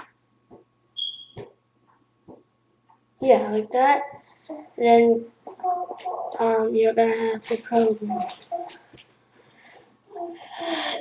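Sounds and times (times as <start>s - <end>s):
short high-pitched electronic beep: 1.0s - 1.4s.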